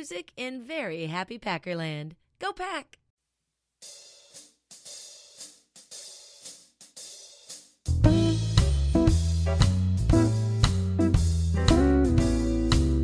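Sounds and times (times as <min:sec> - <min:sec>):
hi-hat and cymbal taps: 0:03.8 - 0:11.8
blues band playing: 0:07.9 - 0:13.0.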